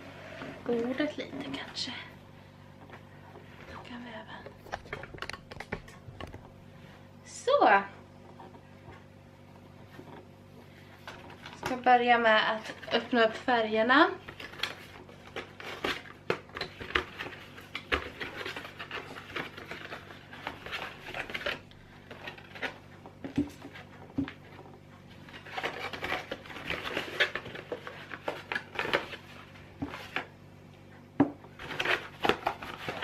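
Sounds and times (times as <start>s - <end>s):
cardboard and paper rustling: 9.8s - 30.4s, 31.5s - 33.0s.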